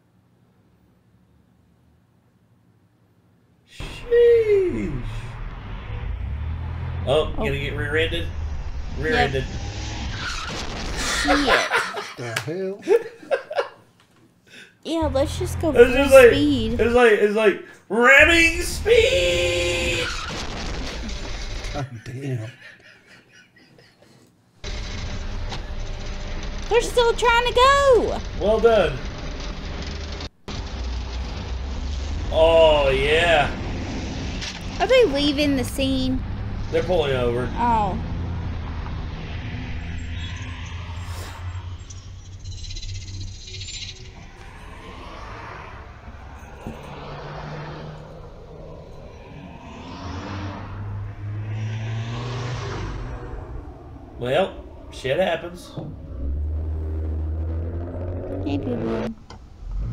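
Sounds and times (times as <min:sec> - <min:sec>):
traffic noise: 0:03.7 - 0:13.7, 0:14.9 - 0:17.3, 0:18.1 - 0:21.9, 0:24.5 - 0:59.9
car running noise: 0:03.8 - 0:11.6, 0:15.0 - 0:17.2, 0:18.1 - 0:21.9, 0:24.6 - 0:59.9.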